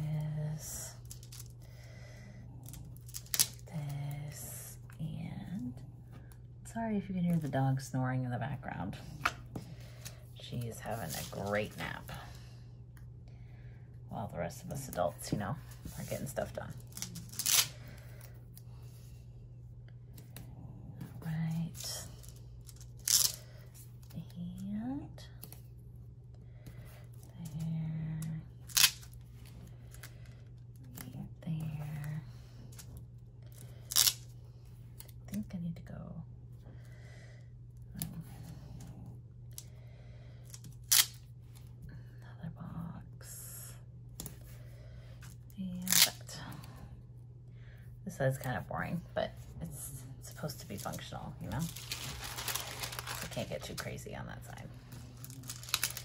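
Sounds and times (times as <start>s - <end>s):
steady low hum: 0.0s - 56.0s
paper pages being handled: 50.7s - 54.0s, 55.2s - 56.0s
plastic sheet crackle: 51.5s - 53.8s, 55.2s - 56.0s.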